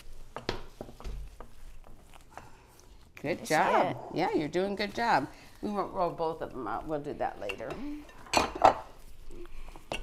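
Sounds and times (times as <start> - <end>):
rolling pin on dough: 0.0 - 10.0.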